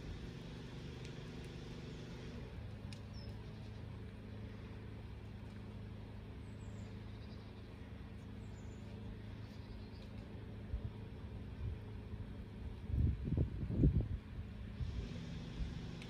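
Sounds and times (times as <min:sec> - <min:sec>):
low engine hum: 0:00.0 - 0:16.0
faint clicks: 0:02.8 - 0:03.4.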